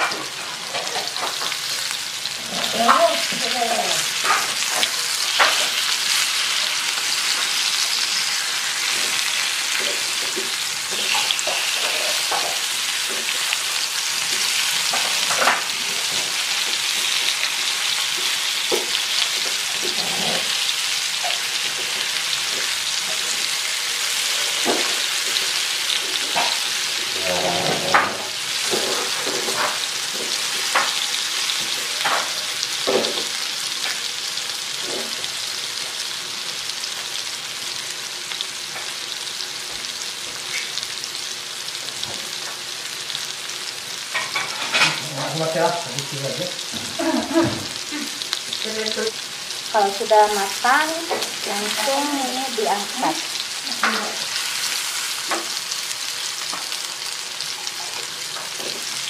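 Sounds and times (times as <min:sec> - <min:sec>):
food sizzling in hot oil: 0:00.0 - 0:59.0.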